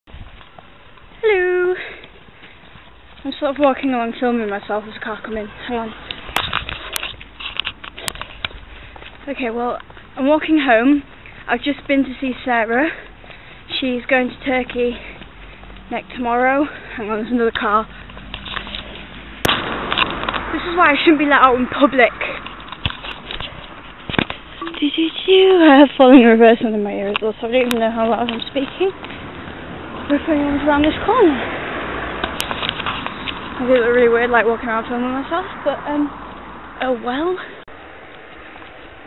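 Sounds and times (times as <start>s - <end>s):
car passing: 0.4s - 39.0s
camera handling rustle: 6.1s - 8.7s, 22.4s - 24.6s
sharp knock: 19.4s - 20.6s.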